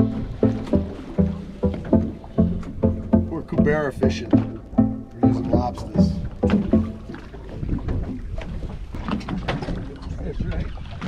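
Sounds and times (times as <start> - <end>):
water lapping against boat hull: 0.0 - 11.0.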